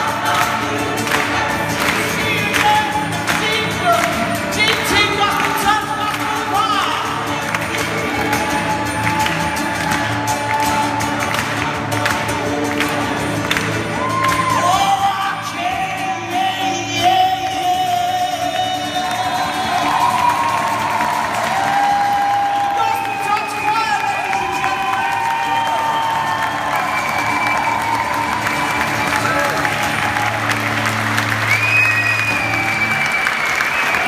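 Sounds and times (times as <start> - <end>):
gospel choir singing: 0.0 - 4.3
acoustic guitar: 0.0 - 34.0.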